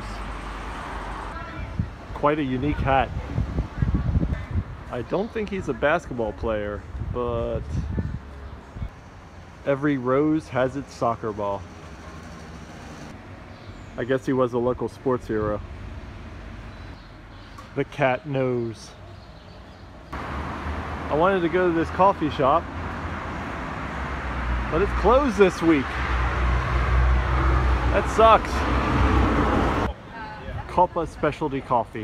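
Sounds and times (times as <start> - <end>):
distant road traffic: 0.0 - 32.0.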